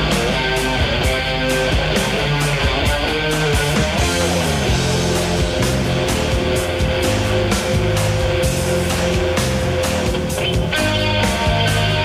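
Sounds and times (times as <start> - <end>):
bass guitar: 0.0 - 12.0
drum beat: 0.0 - 12.0
electric guitar: 0.0 - 12.0.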